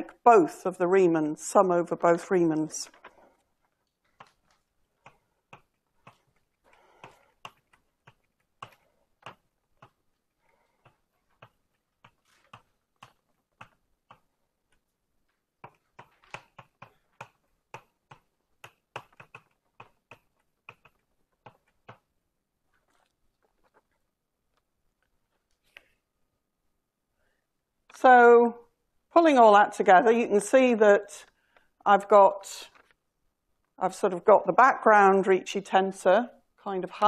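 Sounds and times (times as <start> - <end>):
taps and clicks of writing: 2.9 - 22.1.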